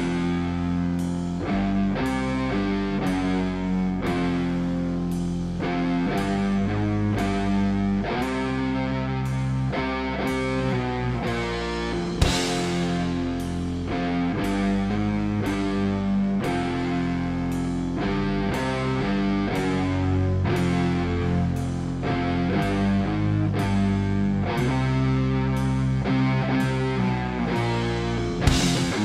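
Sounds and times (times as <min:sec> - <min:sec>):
bass guitar chords: 0:00.0 - 0:29.0
distorted electric guitar: 0:00.0 - 0:29.0
drums: 0:00.0 - 0:29.0
cymbal crash: 0:11.6 - 0:13.9.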